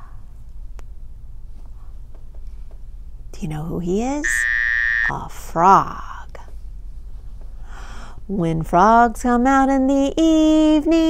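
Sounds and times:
low steady hum: 0:00.0 - 0:11.0
woman's soft intake of breath: 0:07.6 - 0:08.2.

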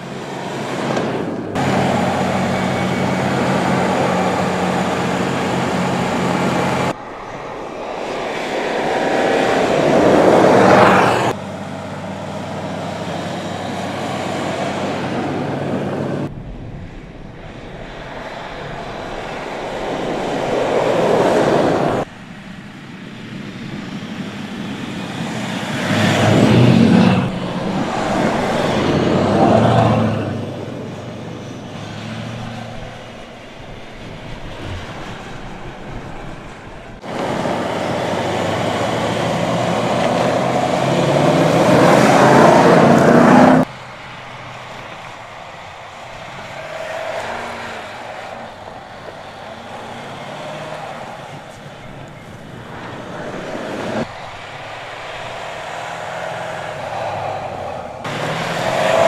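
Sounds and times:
tyres on snow: 0:00.0 - 0:16.4, 0:17.3 - 0:59.0.

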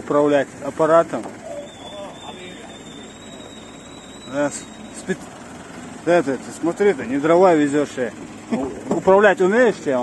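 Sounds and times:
thin high hydraulic whine: 0:01.5 - 0:05.2.

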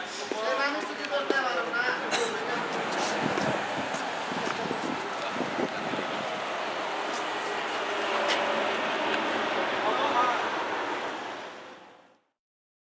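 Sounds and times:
road traffic din: 0:00.0 - 0:12.2.

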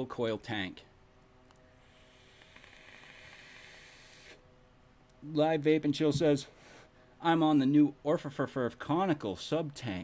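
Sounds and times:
hiss of air drawn through atomizer: 0:01.8 - 0:04.4.

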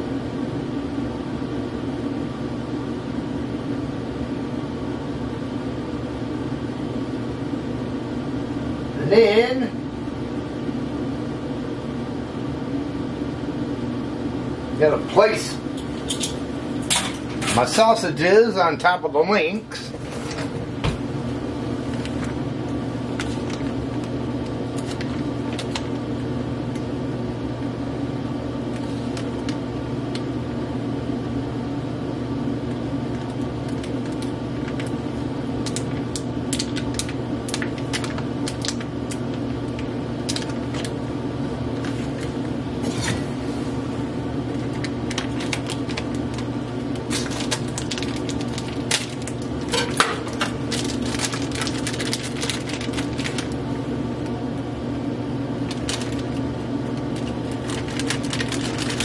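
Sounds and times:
steady hum: 0:00.0 - 0:59.0
plastic packaging crinkling: 0:23.1 - 0:26.0, 0:33.1 - 0:35.0, 0:35.6 - 0:41.0, 0:41.7 - 0:42.5, 0:44.4 - 0:53.7, 0:55.6 - 0:59.0.

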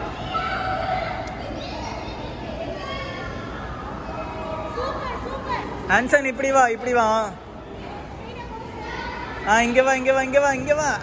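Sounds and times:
children calling out: 0:00.0 - 0:04.9.

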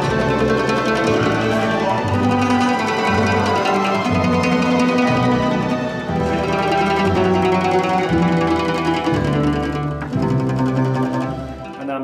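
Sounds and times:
double bass: 0:00.0 - 0:12.0
mandolins and guitars playing: 0:00.0 - 0:12.0.

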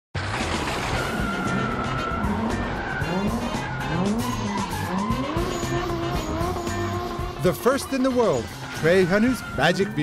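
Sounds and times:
car engine revving: 0:00.2 - 0:08.8
background music: 0:00.2 - 0:10.0.

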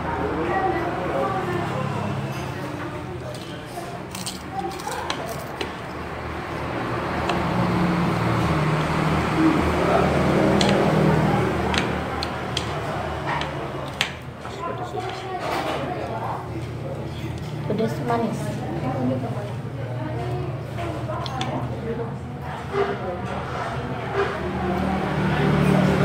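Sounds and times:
background chatter: 0:00.0 - 0:26.0
chopsticks and cutlery clicking plates: 0:03.2 - 0:06.1, 0:10.5 - 0:11.0, 0:11.6 - 0:16.2, 0:21.2 - 0:21.7.

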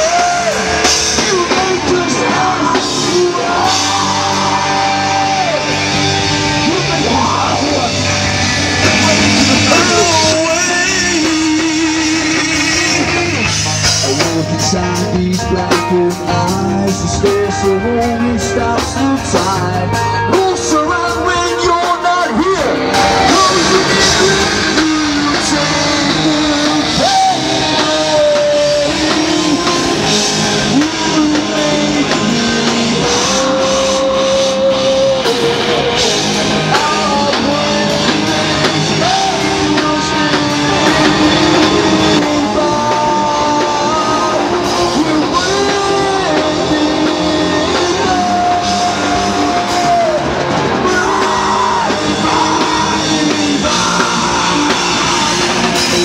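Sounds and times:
heavy rock band playing: 0:00.0 - 0:56.0
man singing long notes: 0:00.0 - 0:56.0.

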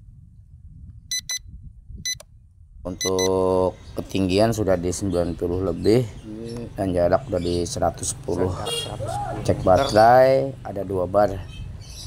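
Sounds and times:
electronic double beep: 0:01.1 - 0:01.4, 0:03.0 - 0:03.4.

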